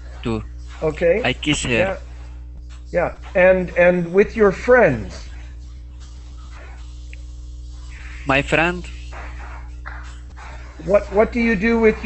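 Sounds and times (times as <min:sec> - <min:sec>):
steady electrical hum: 0:00.0 - 0:12.0
person speaking: 0:00.2 - 0:02.0, 0:07.9 - 0:09.1, 0:10.6 - 0:12.0.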